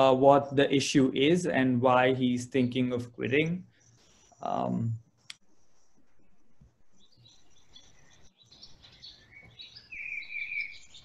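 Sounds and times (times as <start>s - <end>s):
small birds chirping: 2.4s - 11.0s.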